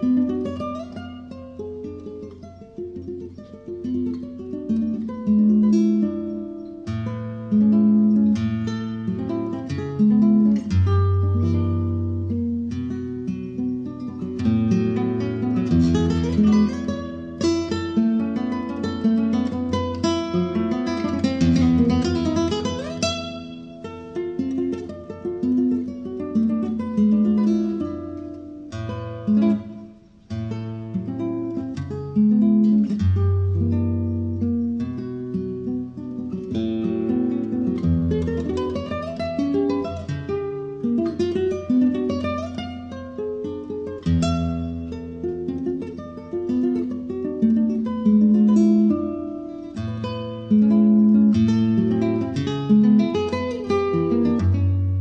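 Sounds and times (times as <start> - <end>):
fingerpicked acoustic guitar: 0.0 - 55.0.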